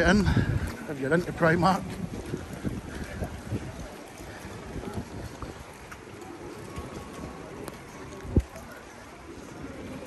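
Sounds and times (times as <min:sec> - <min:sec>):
outdoor street noise: 0:00.0 - 0:10.0
wind buffeting microphone: 0:00.0 - 0:10.0.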